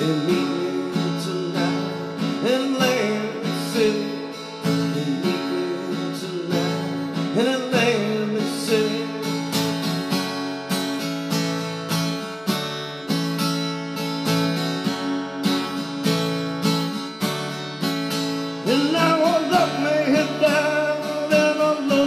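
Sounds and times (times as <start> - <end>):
acoustic guitar strummed: 0.0 - 22.0.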